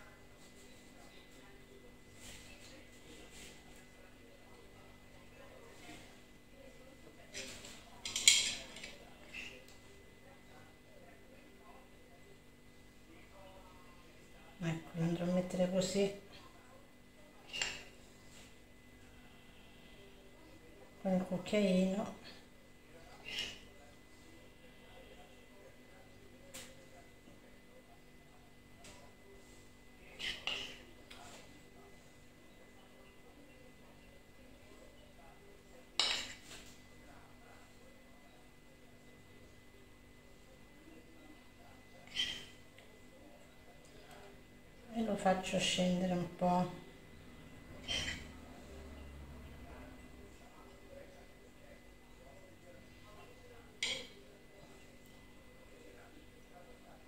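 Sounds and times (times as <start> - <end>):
utensil scraping ceramic plate: 47.8 - 48.3.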